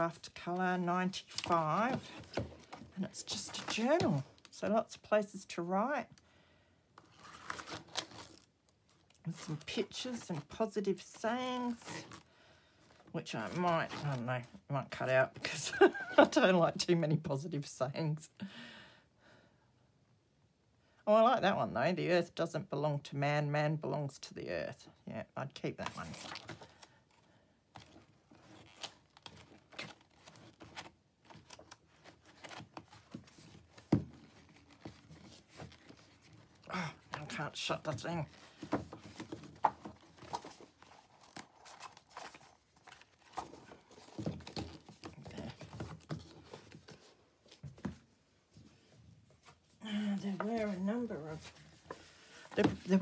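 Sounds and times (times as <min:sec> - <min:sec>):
woman speaking: 0:00.0 - 0:02.2, 0:03.0 - 0:06.1, 0:09.2 - 0:12.1, 0:13.1 - 0:18.4, 0:21.1 - 0:26.3, 0:36.7 - 0:38.4, 0:49.8 - 0:51.6, 0:52.6 - 0:53.0
journal pages turning: 0:07.0 - 0:08.5, 0:27.7 - 0:48.0, 0:50.3 - 0:53.0.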